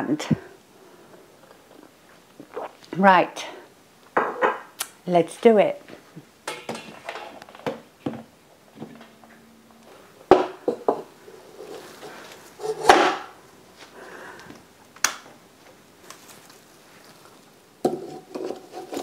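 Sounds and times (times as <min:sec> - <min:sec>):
stiff branches rustling: 0:15.6 - 0:17.7.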